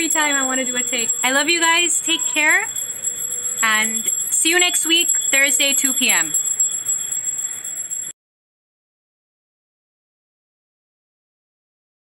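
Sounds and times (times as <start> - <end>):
bells ringing rapidly: 0.0 - 8.1.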